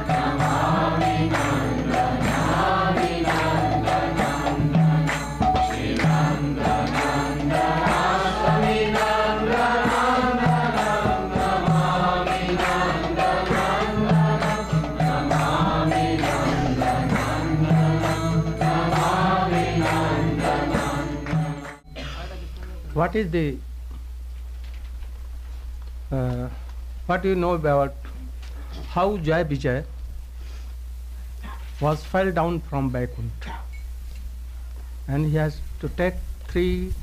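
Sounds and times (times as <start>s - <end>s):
group chanting in unison: 0.0s - 21.8s
regular percussive beat: 0.0s - 22.0s
steady low drone: 0.0s - 22.5s.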